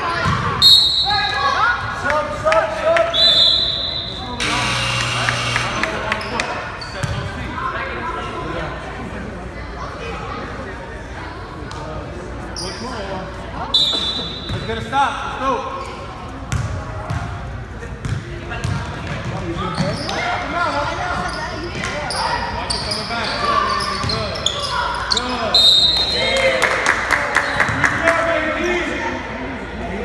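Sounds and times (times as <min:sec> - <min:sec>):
referee's whistle: 0:00.6 - 0:01.3, 0:03.1 - 0:04.4, 0:13.7 - 0:14.7, 0:25.1 - 0:26.3
sneakers squeaking: 0:03.3 - 0:07.8, 0:12.5 - 0:13.1, 0:13.7 - 0:14.9, 0:15.7 - 0:17.4, 0:18.0 - 0:26.2.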